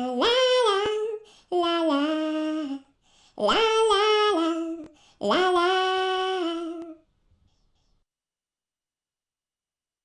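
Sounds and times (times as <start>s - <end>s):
cartoonish singing voice: 0.0s - 7.0s.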